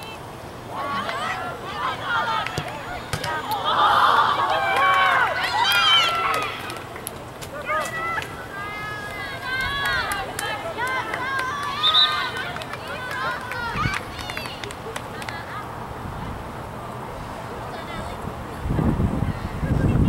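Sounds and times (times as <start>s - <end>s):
voices shouting and calling out: 0.0s - 20.0s.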